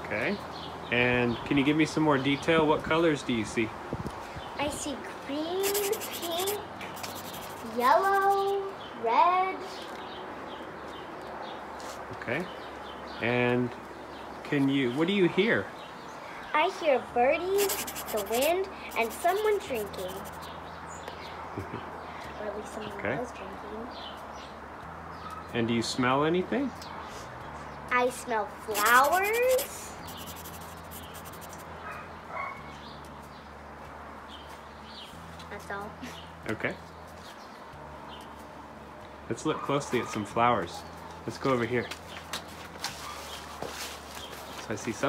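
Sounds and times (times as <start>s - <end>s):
faint outdoor hiss: 0.2s - 10.1s, 12.6s - 22.9s, 27.9s - 31.8s
small birds chirping: 4.2s - 16.8s, 17.5s - 26.0s, 26.6s - 33.6s.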